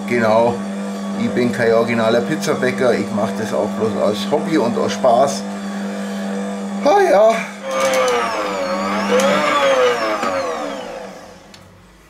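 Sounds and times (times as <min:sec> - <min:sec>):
stand mixer motor whine: 0:00.0 - 0:12.0.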